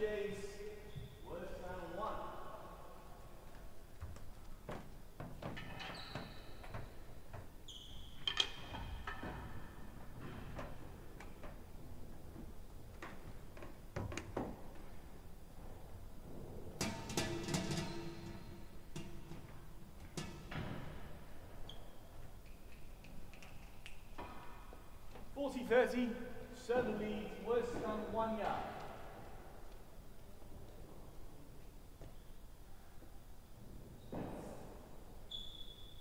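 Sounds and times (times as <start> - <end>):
shoe squeaks: 0.8 - 1.3, 5.8 - 7.0, 7.6 - 9.0, 17.7 - 18.7, 21.6 - 22.9, 35.3 - 36.0.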